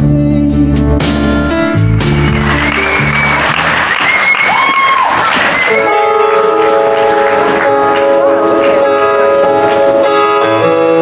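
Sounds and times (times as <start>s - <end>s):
crowd applauding and cheering: 1.9s - 10.0s
shrill whistles: 2.2s - 6.1s.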